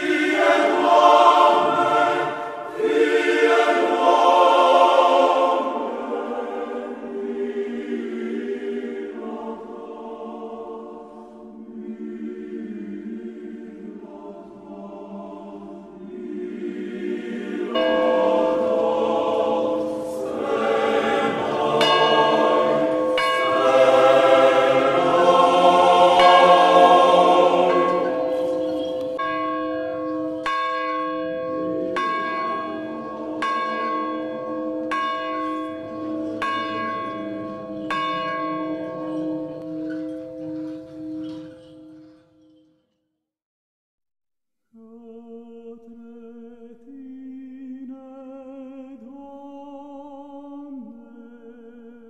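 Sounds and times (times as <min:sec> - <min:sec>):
church bells pealing: 0:00.0 - 0:09.8, 0:16.0 - 0:42.7.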